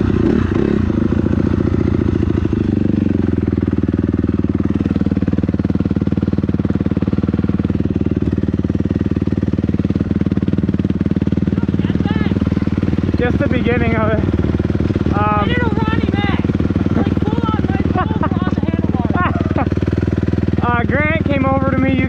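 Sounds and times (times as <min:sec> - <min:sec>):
dirt bike engine idling: 0:00.0 - 0:22.0.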